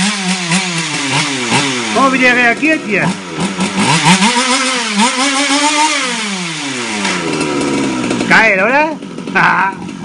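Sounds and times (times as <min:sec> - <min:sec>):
rc car engine revving: 0:00.0 - 0:10.0.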